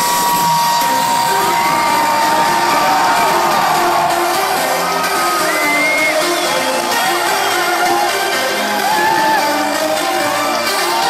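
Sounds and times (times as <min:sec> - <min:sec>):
crowd cheering and whooping: 0:00.0 - 0:11.0
loud electronic dance music: 0:00.0 - 0:11.0.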